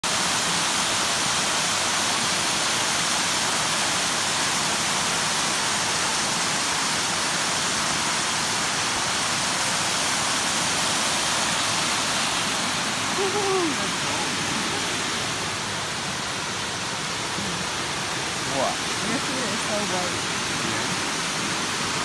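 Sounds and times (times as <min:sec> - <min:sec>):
waterfall rushing over rocks: 0:00.0 - 0:22.0.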